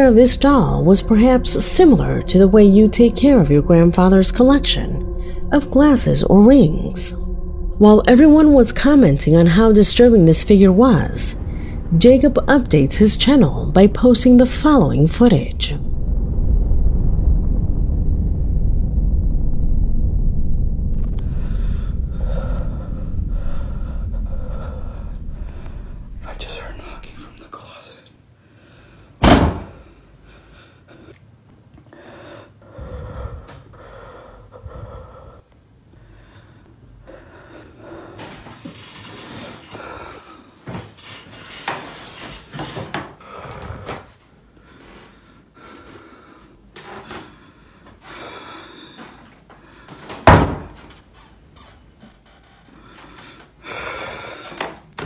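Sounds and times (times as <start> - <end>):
low rumble: 0.0 - 27.6, 32.6 - 40.6
person whispering: 26.2 - 28.2
door banging shut: 29.2 - 29.7, 50.2 - 50.9.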